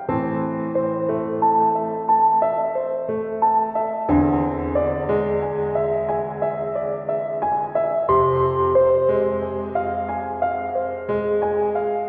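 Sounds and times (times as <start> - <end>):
slow piano music: 0.0 - 12.0.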